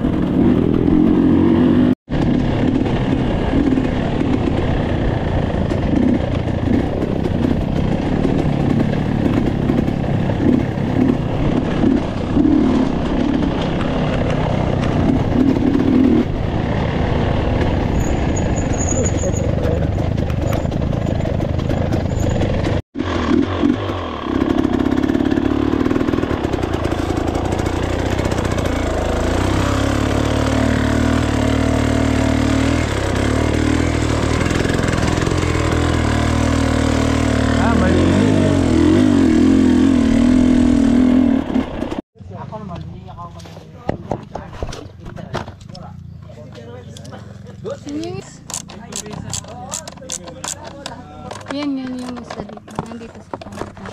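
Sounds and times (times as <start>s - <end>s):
dirt bike engine running: 0.0s - 43.6s, 45.9s - 53.9s.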